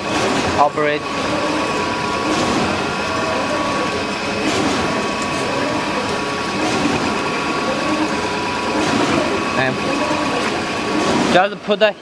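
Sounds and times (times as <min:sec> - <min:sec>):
machine running with faint whine: 0:00.0 - 0:12.0.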